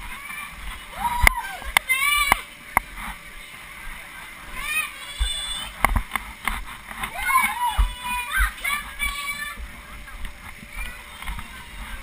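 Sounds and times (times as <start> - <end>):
child's high call: 4.6 - 5.8, 7.1 - 9.6
vinyl rubbing and flapping: 5.2 - 12.0.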